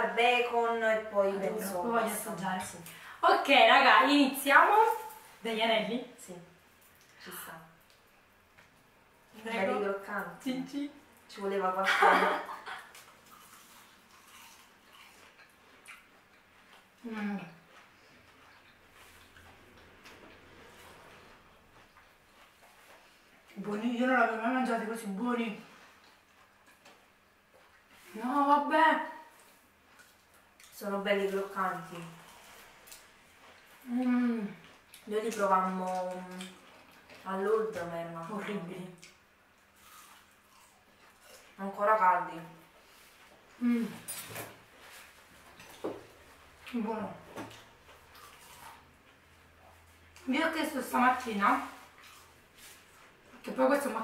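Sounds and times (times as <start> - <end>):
chewing crunchy food: 12.7 - 23.6, 25.6 - 28.1, 31.7 - 41.6, 42.6 - 50.3, 51.6 - 53.5.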